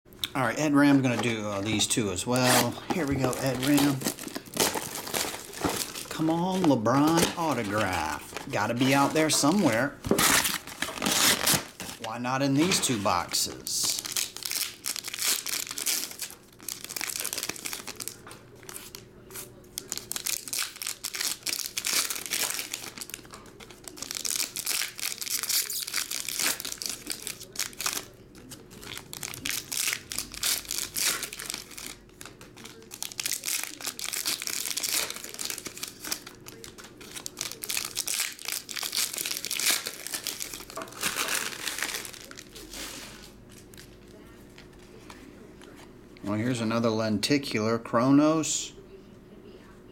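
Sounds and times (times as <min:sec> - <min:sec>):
foil wrappers tearing and crinkling: 0:01.0 - 0:44.2.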